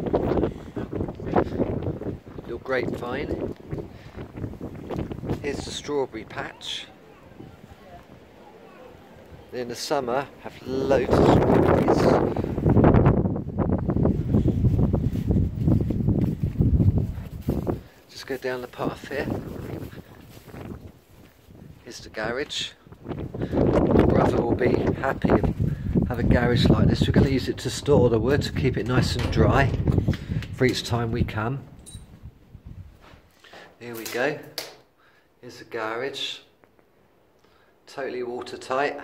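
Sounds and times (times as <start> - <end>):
wind buffeting microphone: 0.0 - 18.0, 18.6 - 33.3.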